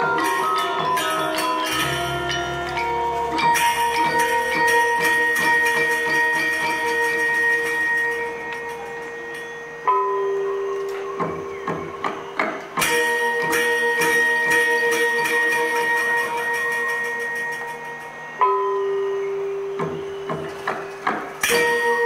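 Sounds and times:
gamelan metallophones and gongs: 0.0 - 22.0.

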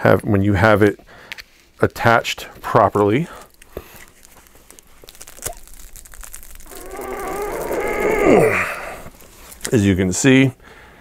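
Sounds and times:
man groaning with effort: 6.7 - 9.1.

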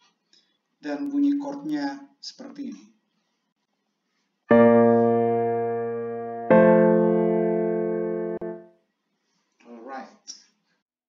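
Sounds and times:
synthesized piano chord: 4.5 - 8.7.

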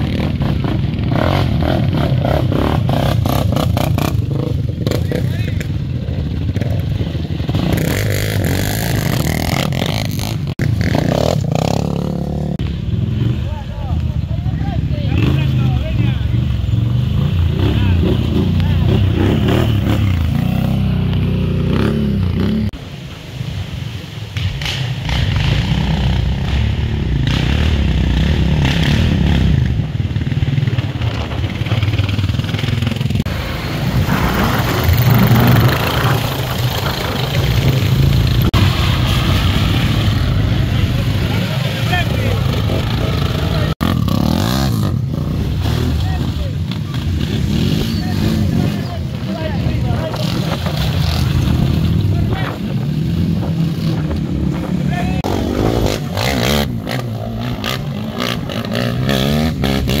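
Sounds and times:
quad bike engines revving: 0.0 - 22.9, 24.3 - 60.0
people's voices: 13.2 - 21.9, 40.0 - 44.0, 45.6 - 56.3.

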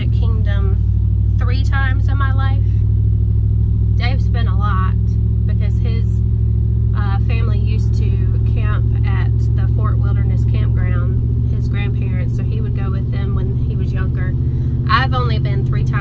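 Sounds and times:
woman talking: 0.0 - 2.8, 4.0 - 6.2, 7.0 - 16.0
engine and road noise drone: 0.0 - 16.0.

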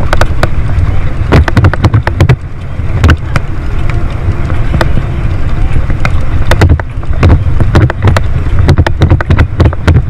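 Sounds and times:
road and wind rumble: 0.0 - 10.0
bike knocking and rattling: 1.3 - 2.4.

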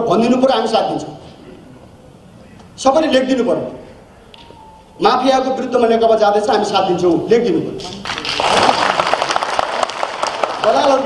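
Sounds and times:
audience applauding: 8.0 - 11.0.

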